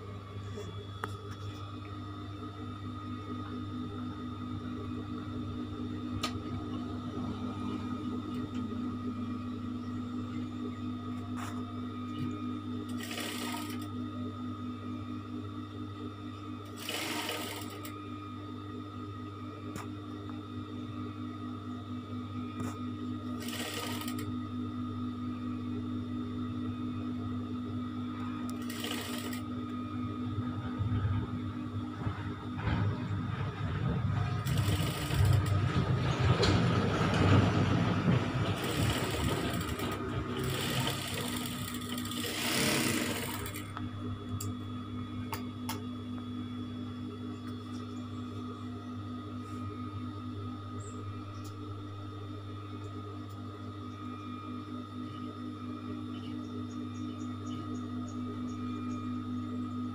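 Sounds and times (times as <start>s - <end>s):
sewing machine humming: 12.8s - 14.0s, 16.6s - 17.9s, 22.6s - 24.3s, 28.2s - 29.6s, 33.4s - 44.4s
rapid machine stitching: 12.9s - 13.9s, 16.7s - 17.9s, 23.4s - 24.3s, 28.6s - 29.4s, 34.2s - 36.6s, 38.2s - 43.7s.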